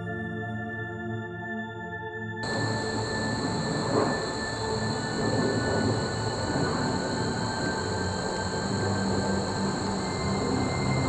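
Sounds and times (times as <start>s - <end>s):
insects droning: 2.4s - 11.0s
rough rumbling noise: 2.4s - 11.0s.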